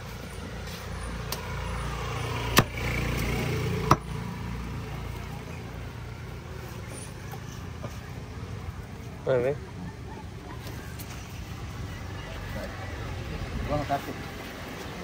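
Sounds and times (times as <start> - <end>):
vehicle passing: 0.0 - 15.0.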